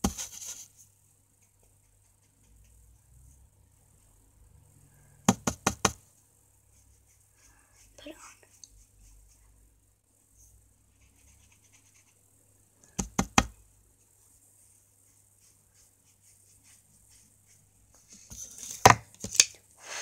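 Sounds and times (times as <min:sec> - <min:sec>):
hard object knocking on surface: 0:05.3 - 0:06.0, 0:13.0 - 0:13.5.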